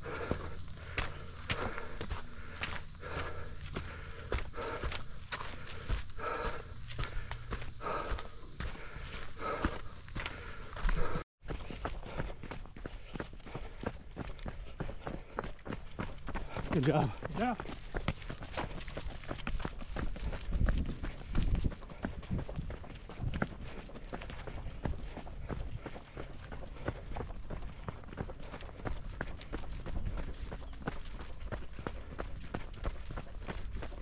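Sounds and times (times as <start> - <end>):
footsteps on rock trail: 0.0 - 34.0.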